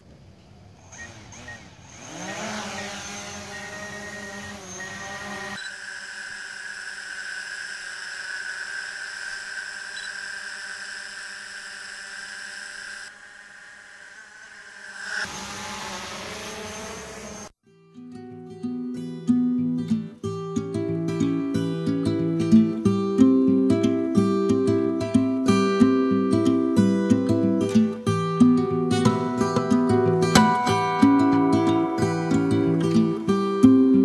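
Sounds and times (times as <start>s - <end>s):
drone propellers whining: 0.6s - 17.5s.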